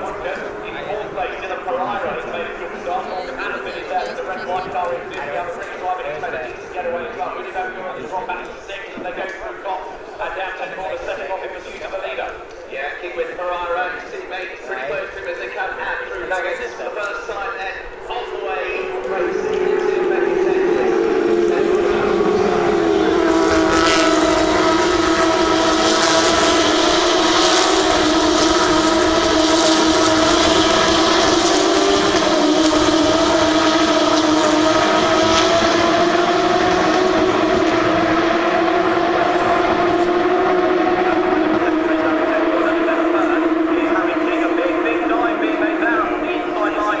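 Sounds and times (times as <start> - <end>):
race car engines at high revs: 0.0 - 47.0.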